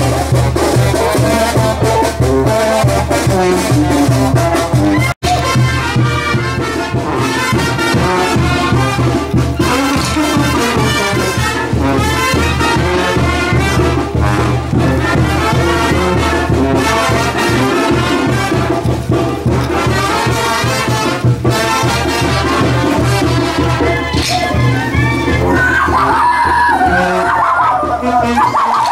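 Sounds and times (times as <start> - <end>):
sousaphone bass: 0.0 - 5.8, 23.5 - 28.9
brass band playing dance music: 0.0 - 28.9.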